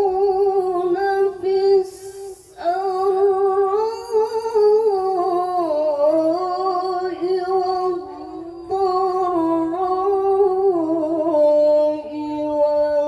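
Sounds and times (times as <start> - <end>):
woman reciting melodically: 0.0 - 13.0.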